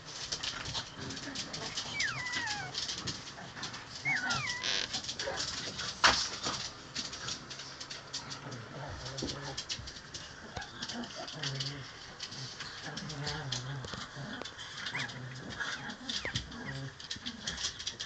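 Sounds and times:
puppies scuffling: 0:00.0 - 0:18.0
puppy whimpers: 0:01.9 - 0:02.8, 0:04.0 - 0:04.9.

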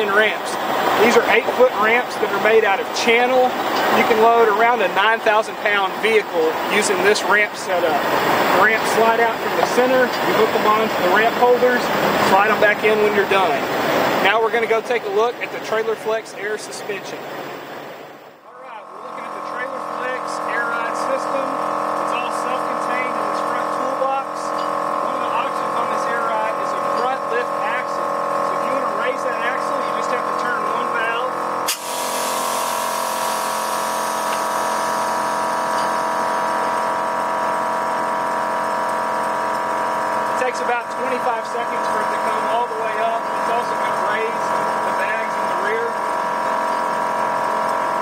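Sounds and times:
air compressor humming: 0:00.0 - 0:48.0
air hissing: 0:31.7 - 0:36.8.

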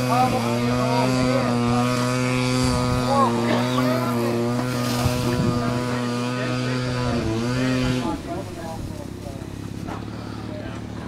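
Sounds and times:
faint voices: 0:00.0 - 0:11.0
model airplane engine droning: 0:00.0 - 0:11.0.

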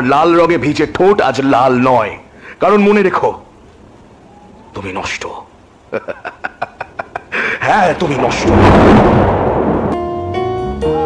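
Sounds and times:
thunder rumble sound effect: 0:07.6 - 0:10.5.

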